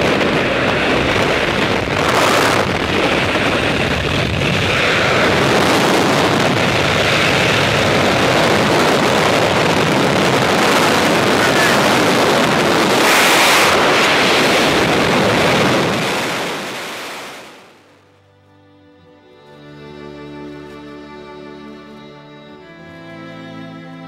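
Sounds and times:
wind buffeting microphone: 0:00.0 - 0:17.9
airplane engine: 0:00.0 - 0:24.0.

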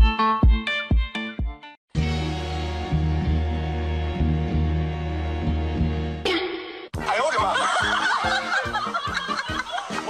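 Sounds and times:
music with quick beat: 0:00.0 - 0:01.7.

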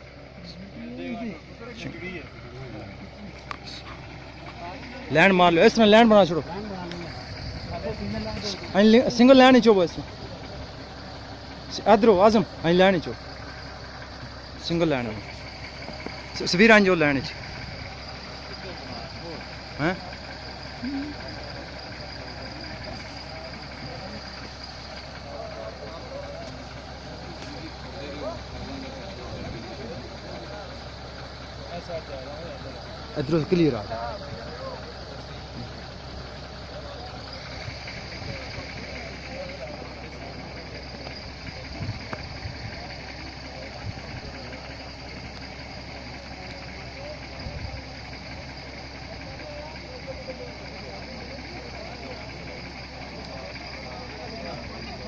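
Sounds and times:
faint men's voices: 0:00.0 - 0:55.0
men talking indistinctly: 0:00.0 - 0:55.0.

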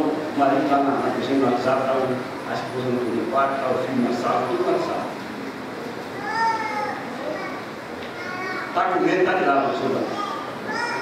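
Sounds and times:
high-pitched voice calling out: 0:06.2 - 0:07.6, 0:10.1 - 0:11.0.

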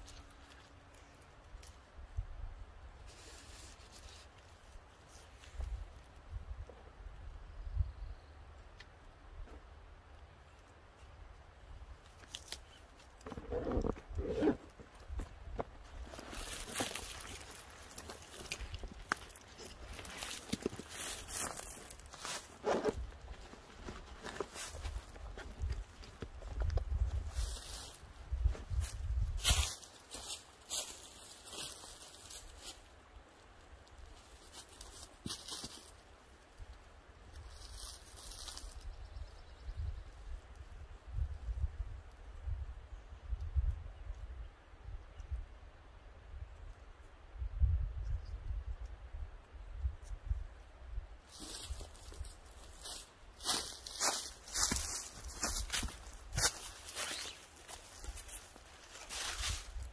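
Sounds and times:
footsteps in dry leaves: 0:03.0 - 0:05.6, 0:15.8 - 0:36.1, 0:37.3 - 0:38.9, 0:51.2 - 0:59.9
camping gear rustling: 0:12.1 - 0:32.9, 0:51.3 - 0:59.9.

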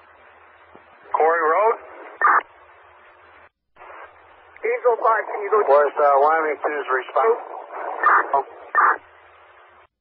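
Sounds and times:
radio channel hiss: 0:00.0 - 0:09.9
radio static burst: 0:01.0 - 0:02.7, 0:03.8 - 0:09.9
person speaking over radio: 0:04.6 - 0:09.0.

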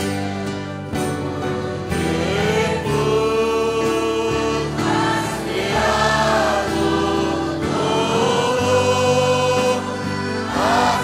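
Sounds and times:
congregation singing: 0:00.0 - 0:11.0
instrumental accompaniment: 0:00.0 - 0:11.0
women singing worship song: 0:00.0 - 0:11.0.

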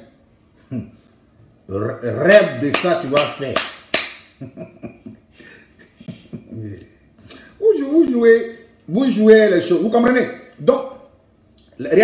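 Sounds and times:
man chuckling quietly: 0:04.4 - 0:07.5.

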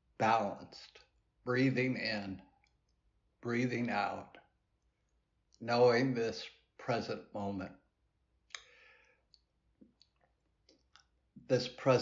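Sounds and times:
faint lip clicks: 0:08.5 - 0:11.1
man's mouth click: 0:08.5 - 0:11.1
soft intake of breath: 0:08.6 - 0:09.3.

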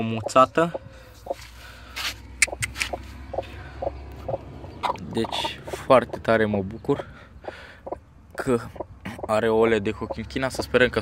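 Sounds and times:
hen clucking low: 0:02.4 - 0:06.3, 0:06.9 - 0:09.4.

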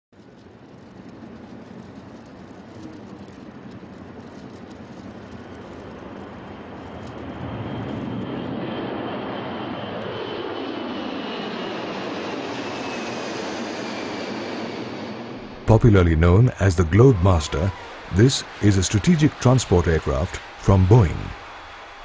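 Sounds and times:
jet engines roaring at takeoff: 0:00.2 - 0:22.0.

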